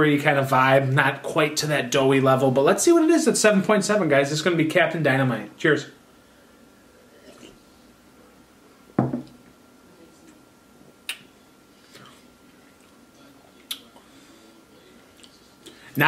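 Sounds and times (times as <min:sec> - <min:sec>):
man drinking from a glass: 0:07.1 - 0:07.6
glass thump on wooden table: 0:09.0 - 0:09.4.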